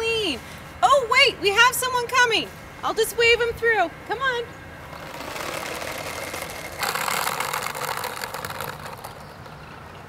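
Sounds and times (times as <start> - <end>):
skateboard wheels rolling on asphalt: 4.9 - 10.0.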